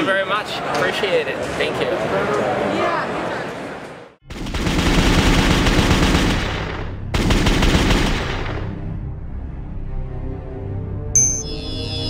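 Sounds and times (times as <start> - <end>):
automatic gunfire: 4.3 - 8.7.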